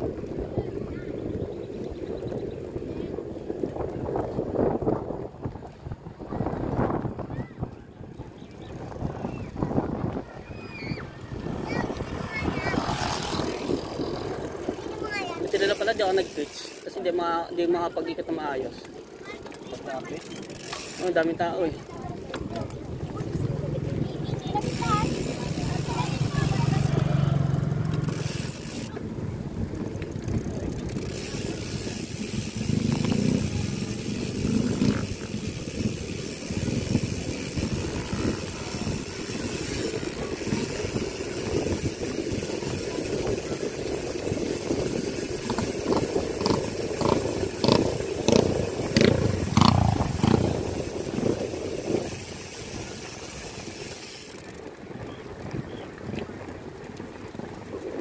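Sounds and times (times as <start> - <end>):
wind on microphone: 0.0 - 15.6, 21.8 - 58.0
bicycle tyre noise on concrete: 0.0 - 58.0
bicycle knocks and rattles: 18.7 - 26.9, 27.8 - 58.0.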